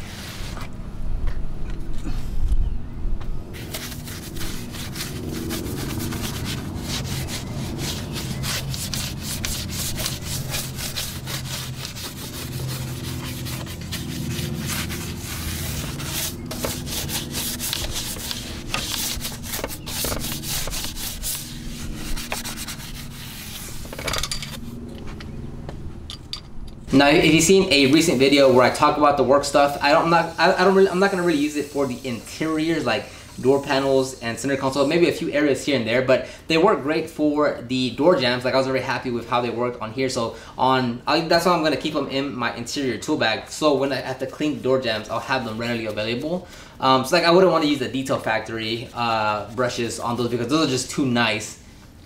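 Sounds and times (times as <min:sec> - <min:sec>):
brush scrubbing: 0:03.5 - 0:24.6, 0:27.0 - 0:35.1.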